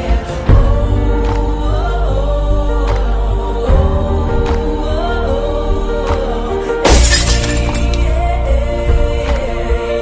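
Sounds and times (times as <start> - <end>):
background music: 0.0 - 10.0
glass shattering: 6.8 - 8.2.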